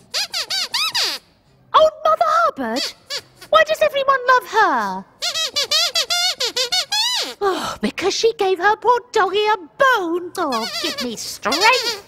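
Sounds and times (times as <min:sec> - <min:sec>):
puppet squeaker squeaks: 0:00.1 - 0:01.3, 0:02.7 - 0:03.6, 0:05.2 - 0:07.4, 0:10.4 - 0:12.0.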